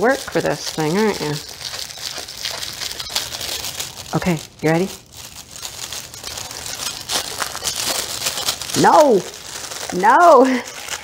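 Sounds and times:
metallic wrapping paper crinkling: 0.0s - 11.0s.

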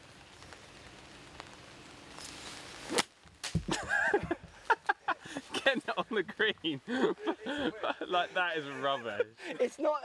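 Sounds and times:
golf club swishing: 2.8s - 3.1s.

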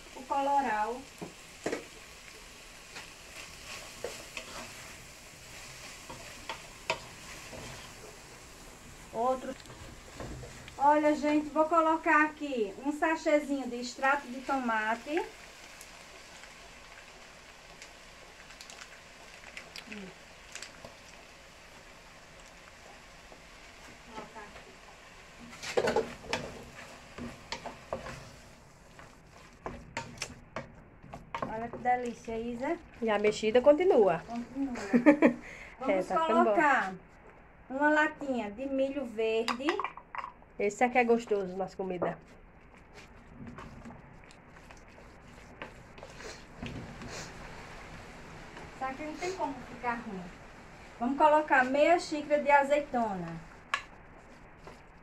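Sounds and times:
faint sizzle of cooking food: 0.0s - 55.0s
wooden spoon stirring thick sauce: 0.6s - 11.1s, 13.8s - 35.0s, 41.0s - 49.8s, 51.4s - 55.0s.

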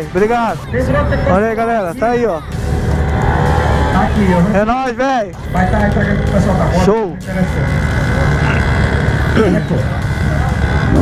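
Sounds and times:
people talking: 0.0s - 2.6s, 4.0s - 11.0s
motorcycle engines idling: 0.0s - 11.0s.

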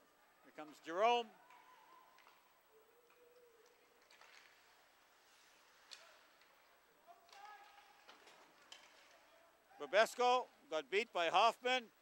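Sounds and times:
clicks of sticks or skates: 3.0s - 9.2s.

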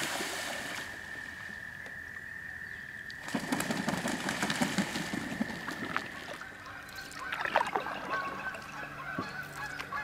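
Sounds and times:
waterfowl wings flapping: 3.2s - 6.4s.

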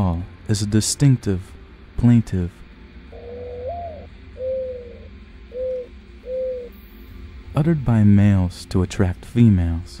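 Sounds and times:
mourning dove cooing: 3.1s - 6.8s.

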